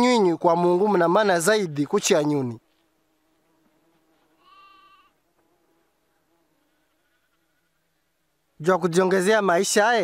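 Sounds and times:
lamb bleating: 0:04.4 - 0:05.2, 0:06.6 - 0:08.0.

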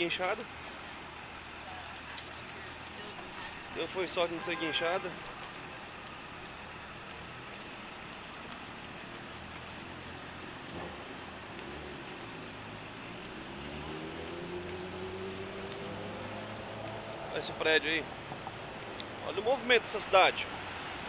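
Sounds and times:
city street traffic: 0:00.0 - 0:21.0
vehicle engine accelerating: 0:09.9 - 0:17.8.

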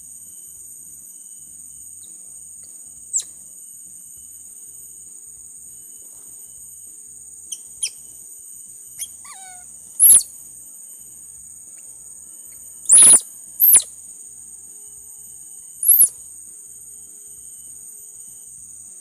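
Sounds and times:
faint chirps: 0:00.0 - 0:19.0
high insect drone: 0:00.0 - 0:19.0
baby monkey squealing: 0:09.0 - 0:10.3, 0:12.9 - 0:13.9, 0:15.8 - 0:16.2.

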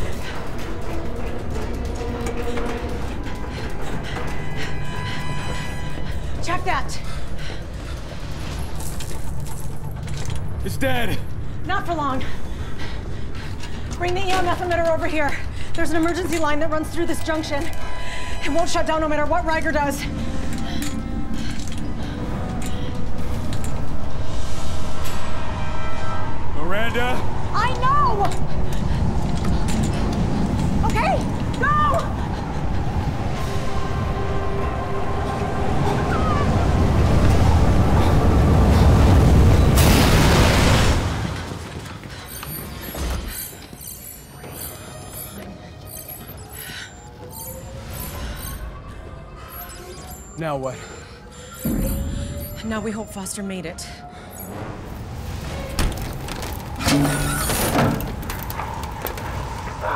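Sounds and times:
sandstorm rumble and roar: 0:00.0 - 0:43.2, 0:45.7 - 0:59.9
dramatic score music: 0:00.0 - 0:59.9.

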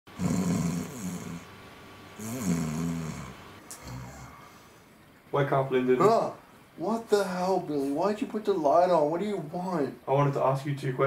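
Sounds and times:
man snoring: 0:00.1 - 0:01.5, 0:02.2 - 0:04.6.

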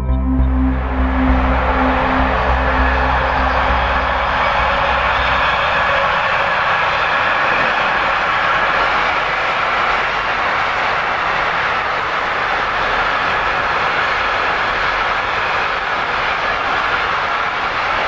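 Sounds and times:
train wheels rolling on track: 0:00.7 - 0:18.0.

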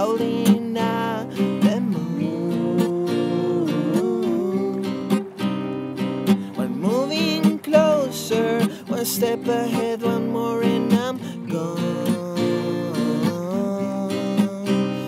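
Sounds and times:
strummed acoustic guitar: 0:00.0 - 0:15.0.

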